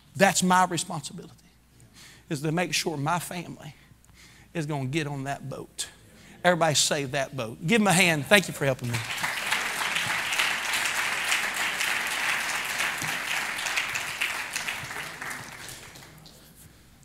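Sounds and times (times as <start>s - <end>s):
congregation applauding: 8.8s - 16.6s.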